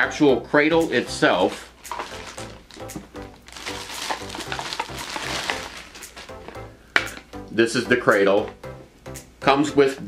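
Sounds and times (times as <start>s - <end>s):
guitar music: 0.8s - 9.4s
plastic bag crinkling: 1.4s - 6.6s.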